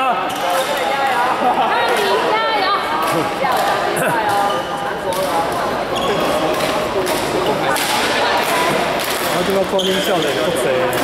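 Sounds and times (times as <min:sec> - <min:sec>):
voices chattering in a hall: 0:00.0 - 0:11.0
rackets hitting shuttlecocks: 0:05.1 - 0:11.0.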